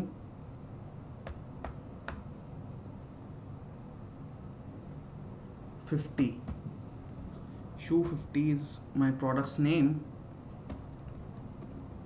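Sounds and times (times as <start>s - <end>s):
computer keyboard keystrokes: 1.2s - 2.3s, 6.4s - 6.6s, 10.6s - 12.0s.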